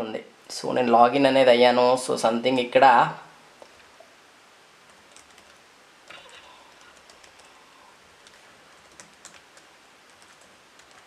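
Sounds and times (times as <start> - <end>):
computer keyboard typing: 4.9 - 7.6, 8.2 - 11.0.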